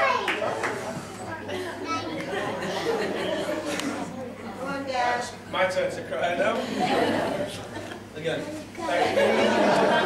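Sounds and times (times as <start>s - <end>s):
hubbub of overlapping voices: 0.0s - 10.0s.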